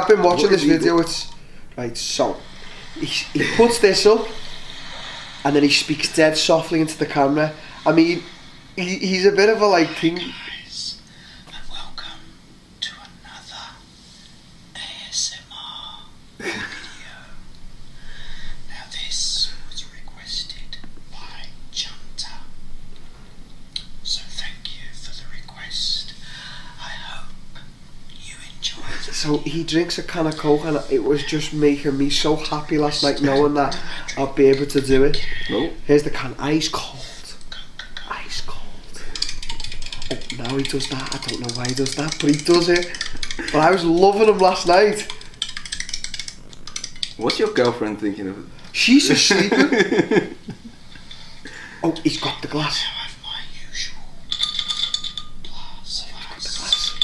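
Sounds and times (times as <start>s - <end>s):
man whispering: 0.0s - 13.9s, 14.7s - 16.2s, 16.8s - 17.4s, 18.1s - 22.6s, 23.8s - 45.2s, 47.1s - 49.0s, 51.6s - 54.3s, 55.4s - 57.0s
can clicking and clinking: 39.1s - 47.6s, 54.3s - 55.4s, 56.6s - 57.0s.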